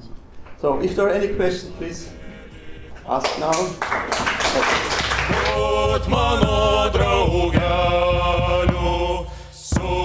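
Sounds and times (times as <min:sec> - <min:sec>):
chant-like tones over drone: 0:01.8 - 0:03.4, 0:05.2 - 0:10.0.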